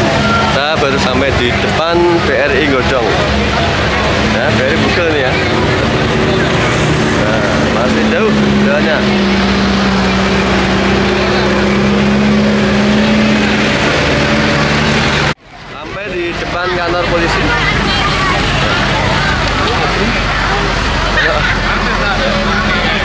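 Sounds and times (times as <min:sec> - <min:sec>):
low engine hum: 0:00.0 - 0:15.4
crowd chatter: 0:00.0 - 0:23.0.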